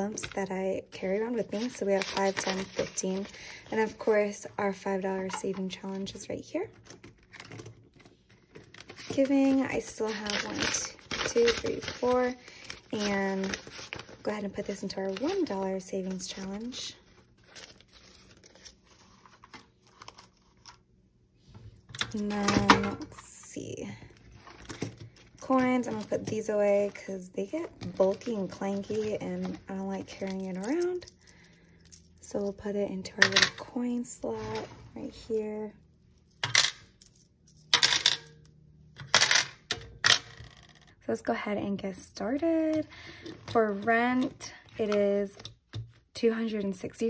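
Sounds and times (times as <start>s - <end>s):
paper bills crinkling: 1.3s - 4.1s, 7.9s - 20.8s
coins clinking into a tray: 36.4s - 40.9s.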